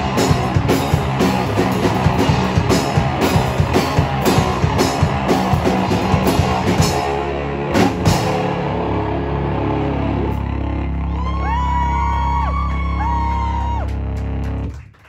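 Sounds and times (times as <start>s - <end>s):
live rock band playing: 0.0s - 11.6s
sliding guitar tones: 0.0s - 11.8s.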